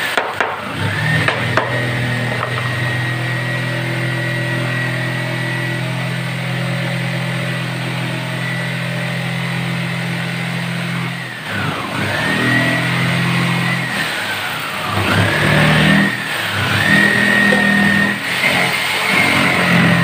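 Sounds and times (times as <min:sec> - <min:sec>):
motor humming: 0:13.6 - 0:20.0.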